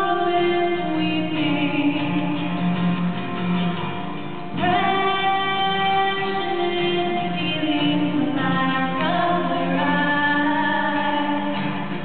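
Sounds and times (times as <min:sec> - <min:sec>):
two women singing slowly: 0:00.0 - 0:02.6, 0:04.6 - 0:11.7
strummed acoustic guitar: 0:00.0 - 0:12.0.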